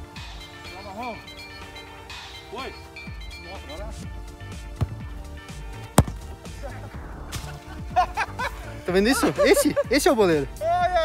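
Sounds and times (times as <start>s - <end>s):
background music: 0.0s - 11.0s
football kick: 4.7s - 5.2s, 5.8s - 6.5s.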